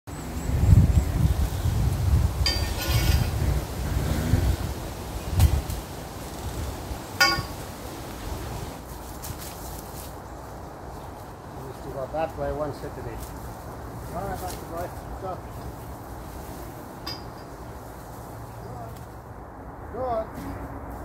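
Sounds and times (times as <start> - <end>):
wind buffeting microphone: 0.1 - 9.6
short ringing clinks: 2.4 - 3.3, 7.2 - 7.6, 17.0 - 17.6.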